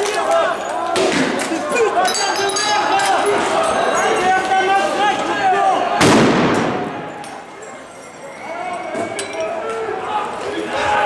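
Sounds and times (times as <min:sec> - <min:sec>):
crowd voices: 0:00.0 - 0:11.0
loud bang with echo: 0:06.0 - 0:07.2.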